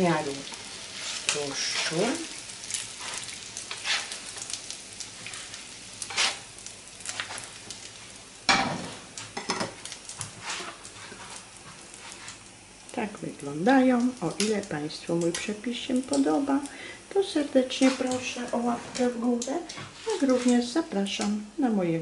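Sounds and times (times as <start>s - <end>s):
fat sizzling in a frying pan: 0.0s - 22.0s.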